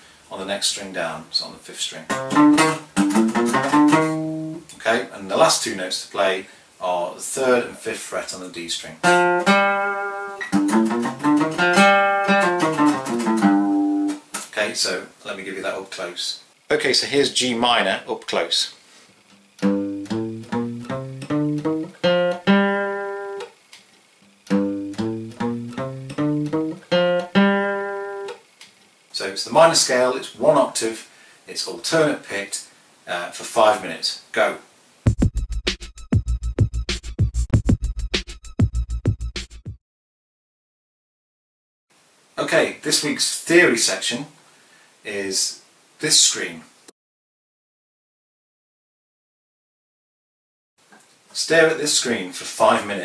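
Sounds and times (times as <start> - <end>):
acoustic guitar picking notes: 2.1 - 4.6, 9.0 - 14.3, 19.6 - 23.5, 24.5 - 28.4.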